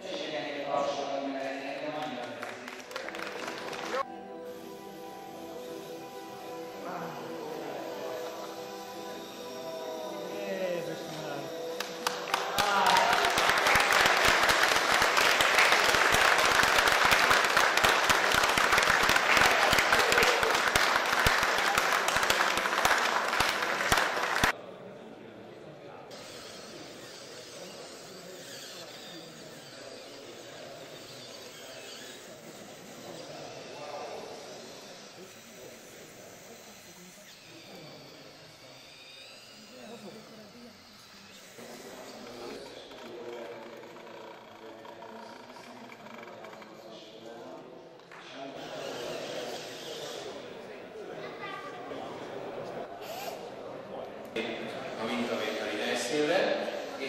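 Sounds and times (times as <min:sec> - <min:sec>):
audience applause: 0:02.0 - 0:04.0, 0:11.8 - 0:24.5.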